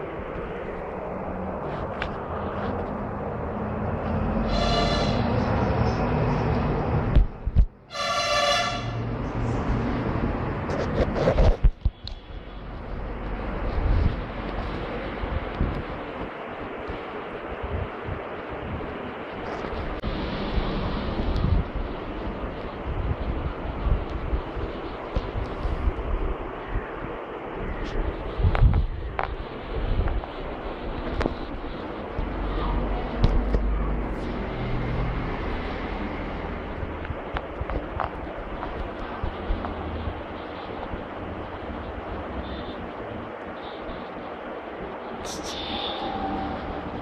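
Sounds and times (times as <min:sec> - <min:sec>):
steady rushing noise: 0:00.0 - 0:07.9, 0:08.8 - 0:47.0.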